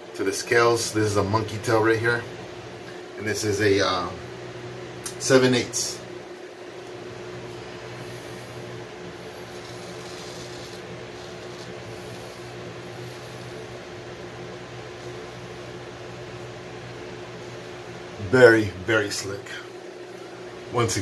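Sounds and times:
ventilation hum: 0.0s - 21.0s
razor rasping over stubble: 7.9s - 14.0s.

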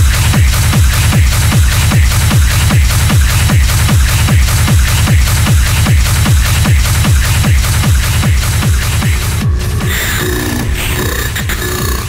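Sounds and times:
synth stabs: 0.0s - 12.0s
techno kick drum: 0.0s - 12.0s.

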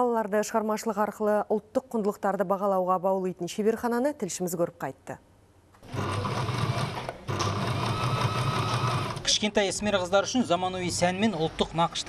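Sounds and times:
sewing machine stitching: 5.8s - 9.3s.

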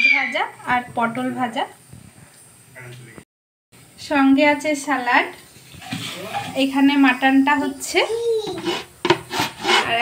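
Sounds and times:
pan lid scraping and knocking: 5.7s - 6.7s, 8.5s - 10.0s.

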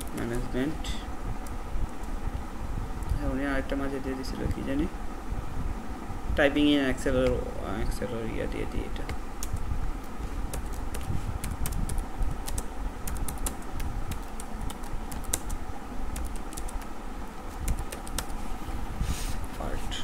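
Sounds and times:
keyboard typing: 0.0s - 0.4s, 10.5s - 16.9s, 17.5s - 18.4s
low background rumble: 0.0s - 20.0s.

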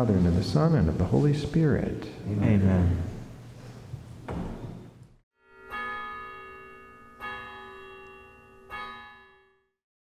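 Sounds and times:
bell ringing: 5.4s - 9.7s.

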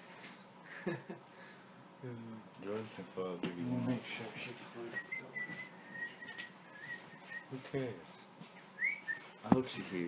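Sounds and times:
faint high whistle: 5.0s - 7.6s, 8.8s - 9.4s.

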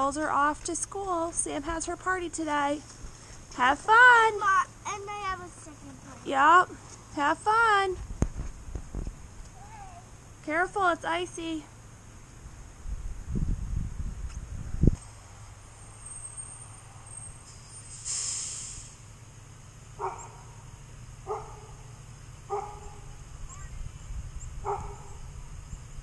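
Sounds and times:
low steady rumble: 0.0s - 17.9s, 18.8s - 26.0s
short hiss: 17.4s - 19.1s
dog barking: 20.0s - 20.5s, 21.2s - 21.8s, 22.5s - 23.1s, 24.6s - 25.2s.

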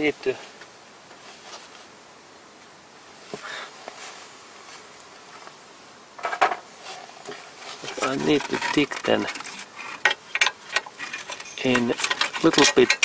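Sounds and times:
metallic clatter: 7.8s - 13.0s
hand tools clicking on metal: 7.9s - 13.0s.

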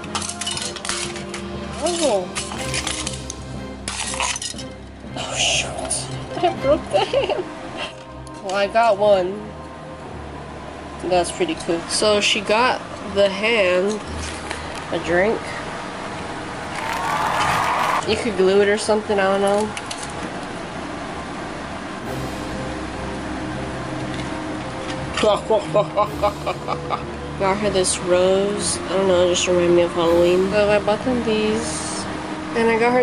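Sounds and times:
quiet background music: 0.0s - 33.0s.

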